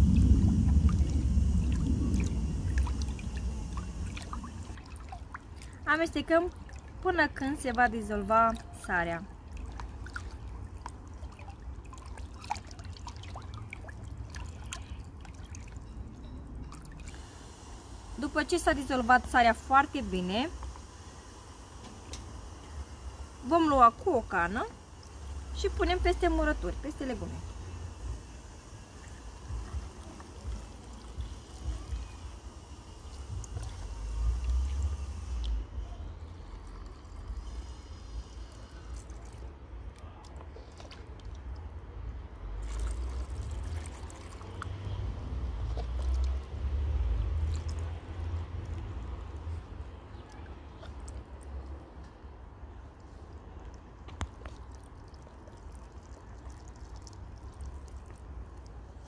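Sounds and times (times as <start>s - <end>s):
low rumble: 0.0s - 5.8s
liquid pouring into glass jar: 36.2s - 39.5s, 42.6s - 44.7s.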